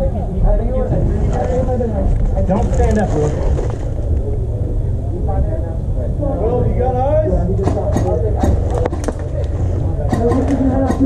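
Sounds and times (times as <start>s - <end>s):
indistinct voices: 0.0s - 11.0s
steady low rumble: 0.0s - 11.0s
airsoft guns firing: 10.1s - 11.0s.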